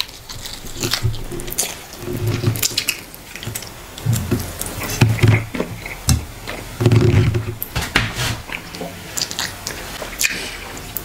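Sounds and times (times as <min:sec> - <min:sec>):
wet chewing: 0:00.0 - 0:07.8, 0:08.4 - 0:11.0
lip smacks: 0:08.5 - 0:11.0.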